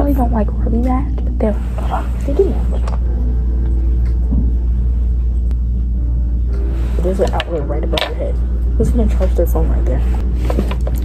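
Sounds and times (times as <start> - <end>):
faint hum: 0.0 - 11.0
low rumble: 0.0 - 11.0.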